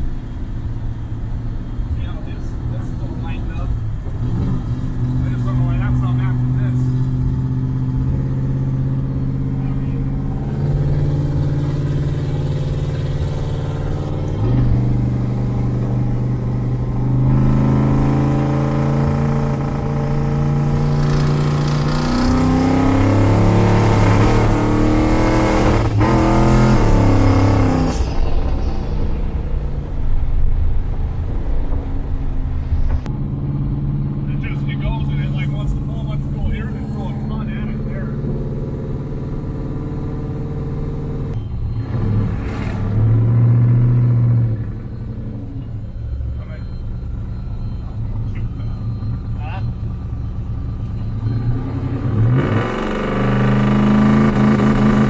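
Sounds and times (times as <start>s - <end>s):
car engine droning: 0.0s - 55.0s.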